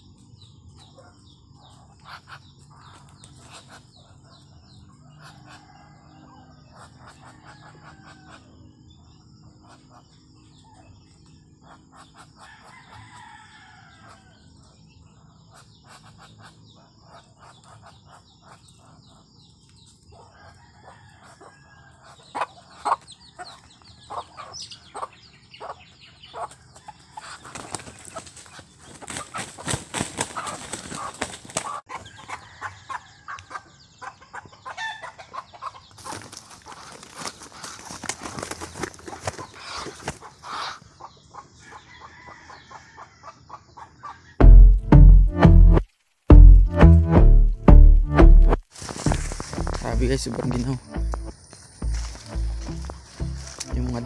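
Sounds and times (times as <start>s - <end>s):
wing flapping: 27.4s - 31.9s, 36.0s - 40.3s.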